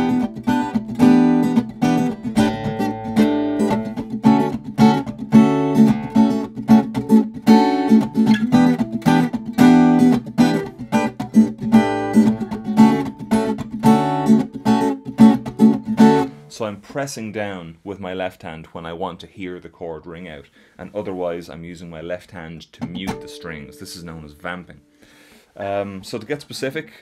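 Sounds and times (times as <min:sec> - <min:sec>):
acoustic guitar strumming: 0:00.0 - 0:16.6, 0:22.8 - 0:25.1.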